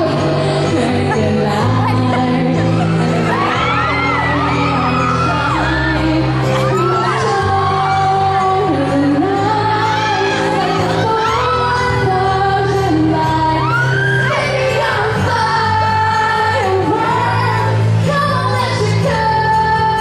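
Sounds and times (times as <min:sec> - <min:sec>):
woman singing into a microphone: 0:00.0 - 0:20.0.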